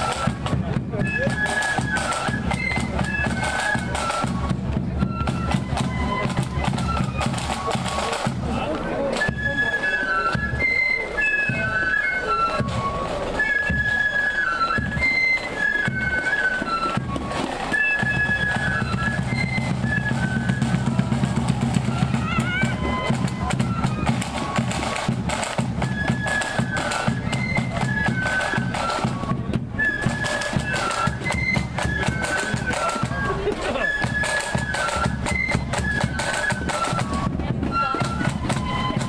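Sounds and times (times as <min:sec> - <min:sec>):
drums: 0:00.0 - 0:39.0
flutes playing melody: 0:00.0 - 0:39.0.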